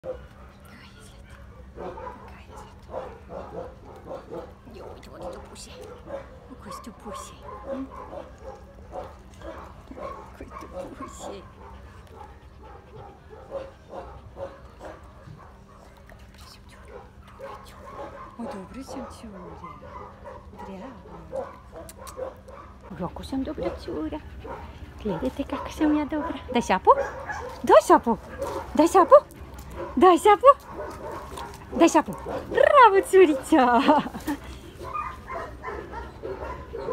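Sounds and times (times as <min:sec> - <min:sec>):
dog barking and yipping: 0:01.3 - 0:15.7, 0:16.9 - 0:22.9, 0:24.4 - 0:33.6, 0:34.8 - 0:36.9
woman's voice: 0:06.5 - 0:07.9, 0:22.9 - 0:24.3, 0:25.0 - 0:29.4, 0:30.0 - 0:30.7, 0:31.7 - 0:34.5.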